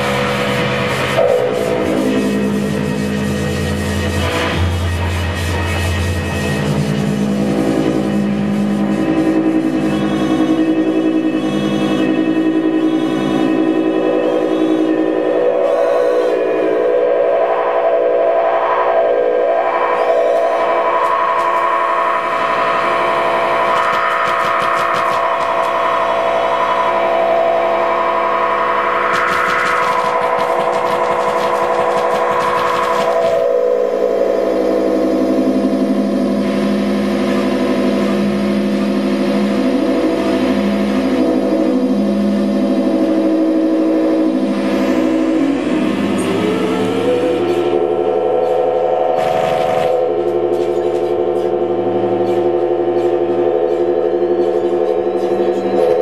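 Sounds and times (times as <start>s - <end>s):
fast pulsing synth texture: 0.0s - 56.0s
sustained synth drones with echo: 0.0s - 56.0s.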